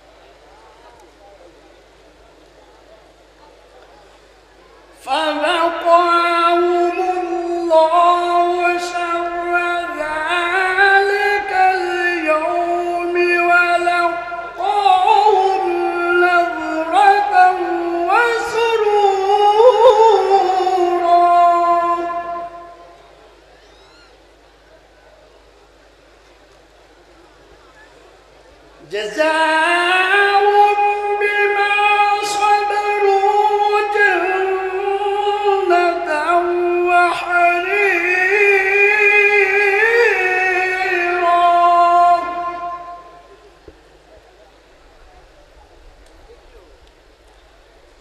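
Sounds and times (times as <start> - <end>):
low background noise: 0.0 - 48.0
man singing into microphone: 5.0 - 23.0, 28.8 - 43.4
man singing held note: 28.9 - 43.6
faint click: 46.0 - 46.2, 46.8 - 47.4.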